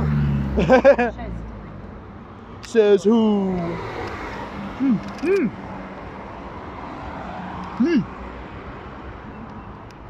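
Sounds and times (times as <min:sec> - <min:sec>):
distant traffic hum: 0:00.0 - 0:10.0.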